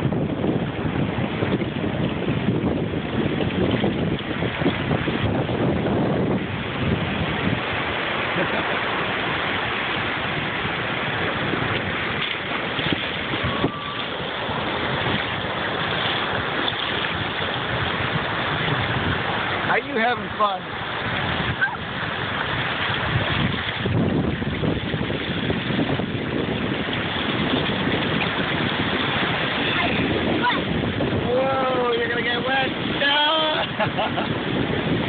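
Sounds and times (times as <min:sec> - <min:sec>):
ocean surf breaking on shore: 0:00.0 - 0:35.0
wind buffeting microphone: 0:00.0 - 0:35.0.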